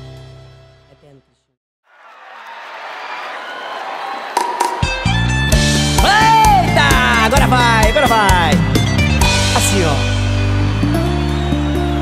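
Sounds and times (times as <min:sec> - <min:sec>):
live rock band playing: 0:04.5 - 0:12.0.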